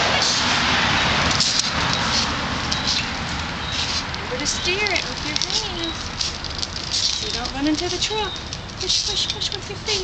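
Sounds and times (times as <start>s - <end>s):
plastic wheels rolling on concrete: 0.0s - 10.0s.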